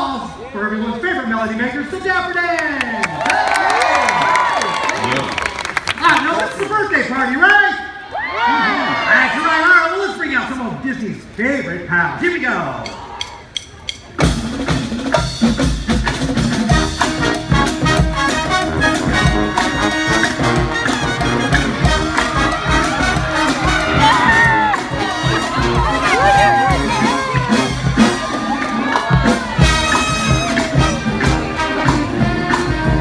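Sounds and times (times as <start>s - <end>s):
crowd cheering: 2.5s - 6.8s, 7.8s - 10.0s, 17.8s - 33.0s
drumstick count-off clicks: 12.8s - 14.4s
brass marching band: 14.2s - 33.0s.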